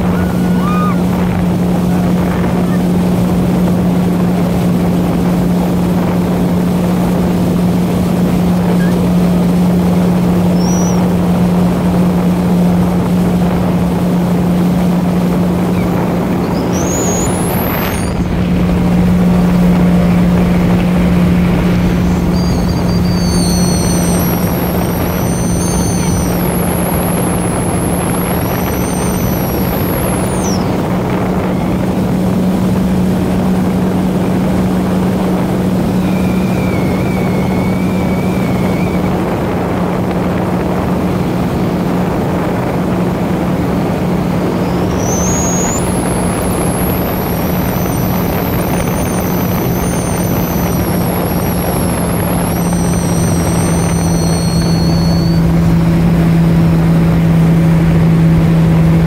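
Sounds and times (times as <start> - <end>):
jet ski engine drone: 0.0 - 59.0
water rushing: 0.0 - 59.0
wind: 0.0 - 59.0.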